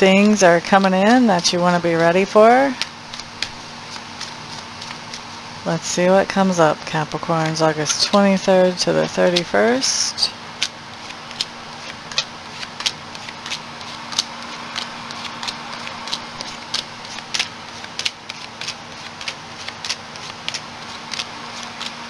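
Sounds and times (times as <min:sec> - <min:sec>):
steady low hum: 0:00.0 - 0:22.0
cards being shuffled: 0:00.1 - 0:05.5, 0:06.3 - 0:22.0.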